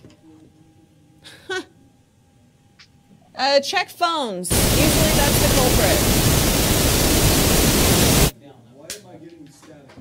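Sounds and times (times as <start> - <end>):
loud static hiss: 4.5 - 8.4.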